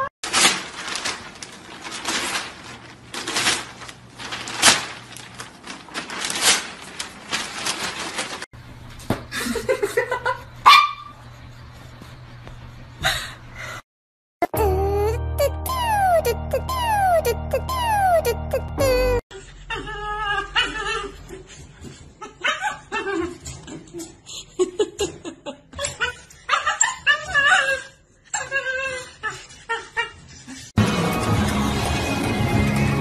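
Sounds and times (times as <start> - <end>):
dog barking: 10.6 - 11.2
dog yipping: 10.6 - 11.2, 15.7 - 18.4, 25.8 - 29.4.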